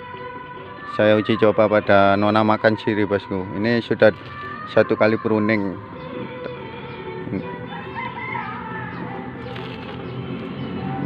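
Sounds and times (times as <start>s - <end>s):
background music with sustained tones: 0.0s - 11.0s.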